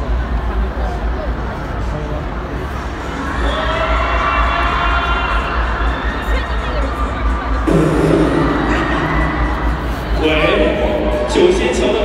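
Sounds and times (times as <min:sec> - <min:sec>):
boomy music over loudspeakers: 0:00.0 - 0:12.0
steady low rumble: 0:07.6 - 0:12.0.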